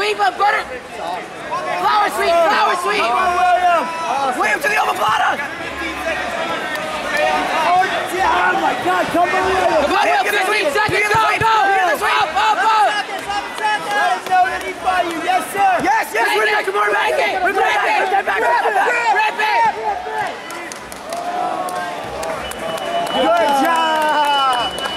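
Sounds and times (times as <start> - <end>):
crowd shouting in gym: 0.0 - 24.9.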